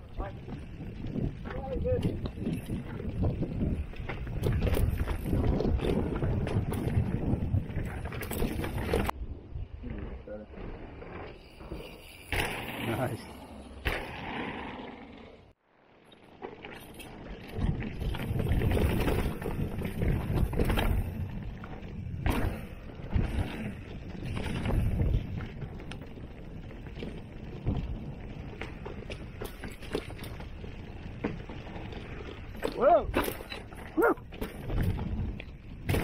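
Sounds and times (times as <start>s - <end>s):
wind rumbling on microphone: 0.0s - 13.1s, 17.0s - 36.0s
bike rattling over bumps: 0.0s - 36.0s
bike tyres rolling over dirt: 0.0s - 36.0s.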